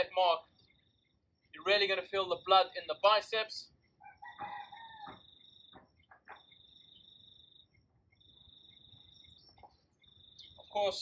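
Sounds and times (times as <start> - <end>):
high insect trill: 0.4 - 11.0.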